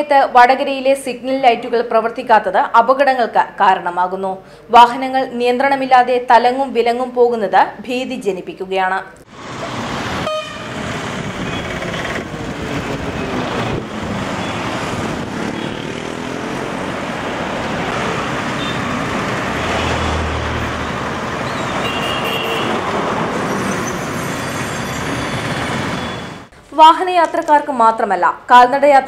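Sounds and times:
vehicles passing: 9.2s - 26.5s
heavy vehicle engine rumble: 9.4s - 15.8s
vehicle horn toots: 10.2s - 11.8s, 18.6s - 18.9s, 21.4s - 22.8s.

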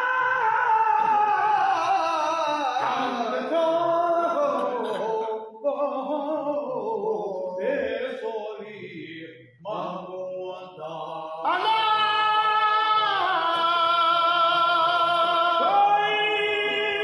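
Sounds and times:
men chanting devotional song: 0.0s - 17.0s.

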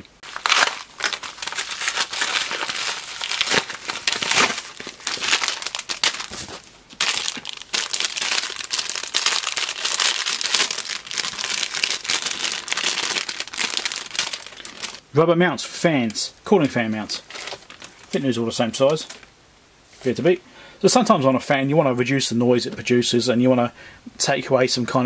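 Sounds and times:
plastic bag crinkling: 0.0s - 15.0s, 17.2s - 19.3s.

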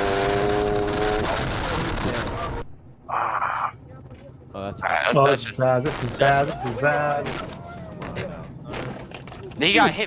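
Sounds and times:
road and wind noise: 0.0s - 10.0s.

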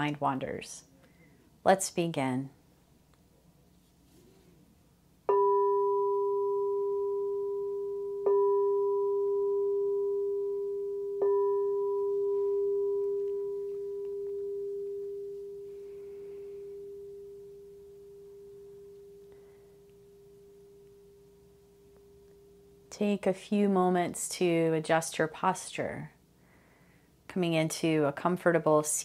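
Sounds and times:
singing bowl ringing: 5.3s - 22.9s.

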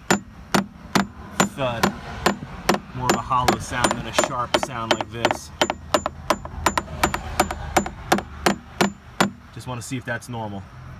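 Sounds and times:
hammer tapping fiberglass: 0.0s - 9.4s.

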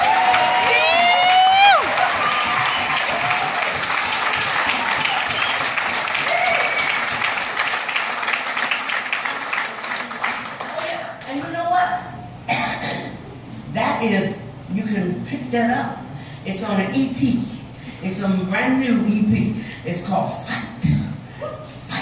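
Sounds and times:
audience applauding: 0.0s - 11.2s
listener's rising whoop: 6.2s - 7.0s.

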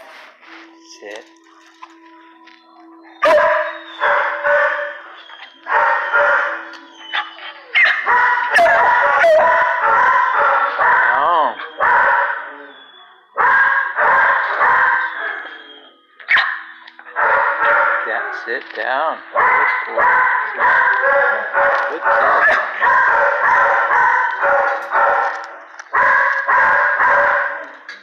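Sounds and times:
dogs barking: 3.0s - 28.0s.

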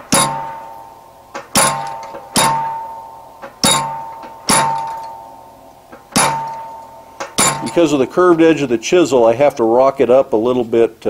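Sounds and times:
hammer striking chisel on steel: 0.0s - 8.7s.

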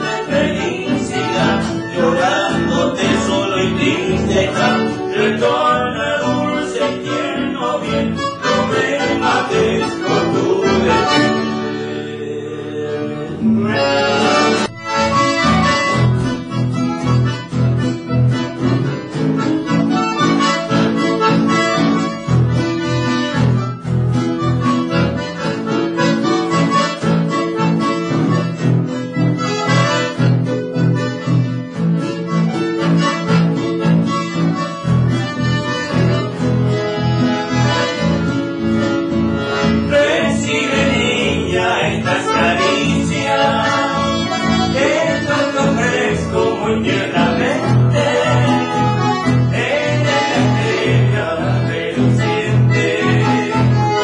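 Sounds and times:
accordion: 0.0s - 54.0s
strummed acoustic guitars: 0.0s - 54.0s.

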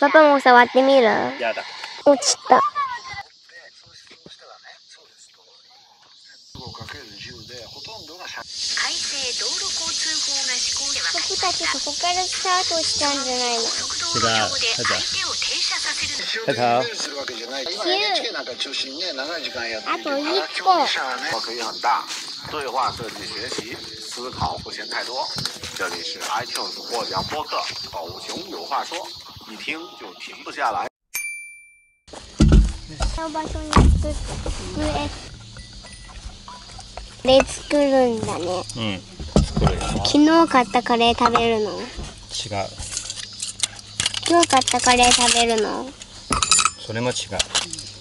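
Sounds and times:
insects buzzing: 0.0s - 30.9s, 32.1s - 48.0s
voices talking: 0.0s - 30.9s, 32.9s - 48.0s
low rumbling thump: 32.4s - 35.4s, 39.1s - 40.1s.

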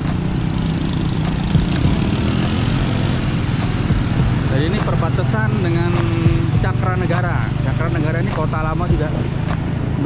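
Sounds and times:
motorcycle engines rumbling: 0.0s - 10.0s
road traffic: 0.0s - 10.0s.

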